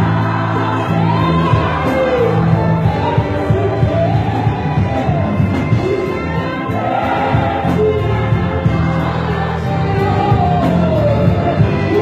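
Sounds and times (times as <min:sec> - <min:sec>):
band accompaniment with bass: 0:00.0 - 0:12.0
gospel choir singing: 0:00.0 - 0:12.0.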